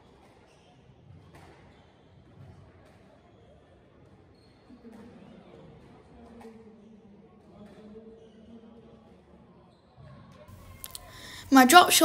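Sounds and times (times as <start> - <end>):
squash ball hitting rackets and walls: 1.0 - 1.7.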